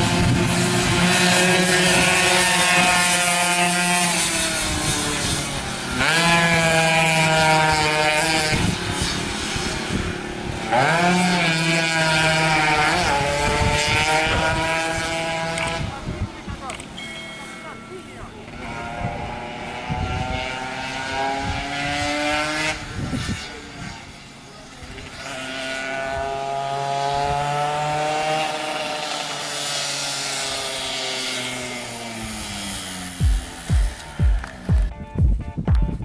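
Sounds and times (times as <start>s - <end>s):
two-stroke motorcycle revving: 0.0s - 35.5s
music with steady beat: 33.2s - 36.0s.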